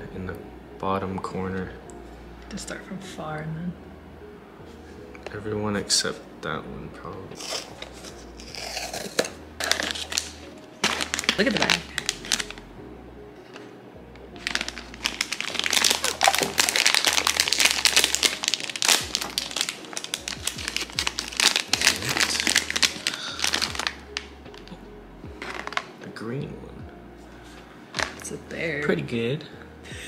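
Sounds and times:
plastic bag crinkling and tearing: 0:07.4 - 0:12.6, 0:14.4 - 0:24.7, 0:25.4 - 0:25.9, 0:28.0 - 0:28.4.

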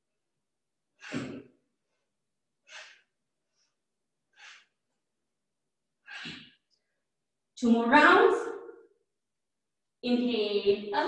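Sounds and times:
forceful exhalation: 0:01.0 - 0:01.6, 0:02.6 - 0:03.7, 0:04.3 - 0:04.8, 0:06.0 - 0:06.7.

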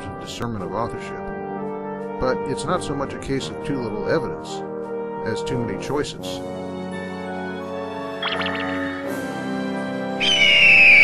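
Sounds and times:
soft background music: 0:00.0 - 0:11.0
cartoon eagle screech: 0:10.2 - 0:11.0.

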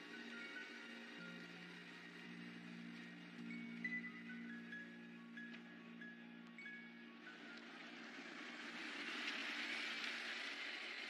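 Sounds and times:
car passing by: 0:07.3 - 0:11.0.

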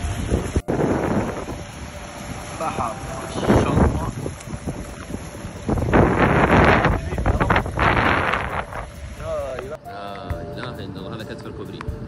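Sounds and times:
floodwater rushing: 0:00.0 - 0:09.8
wind buffeting microphone: 0:00.0 - 0:09.8.

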